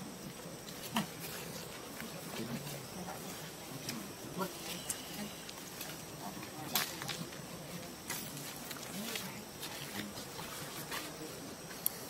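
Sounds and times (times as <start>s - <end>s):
faint distant voices: 0.0s - 12.0s
outdoor ambience: 0.0s - 12.0s.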